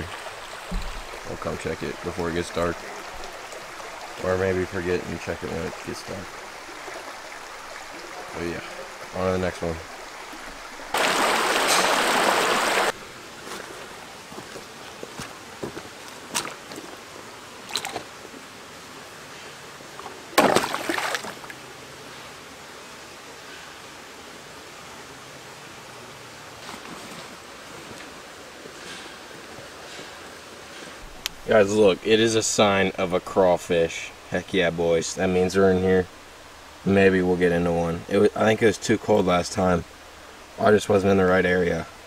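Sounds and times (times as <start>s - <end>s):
creek water running: 0.0s - 42.0s
trap splashing into water: 20.4s - 21.5s.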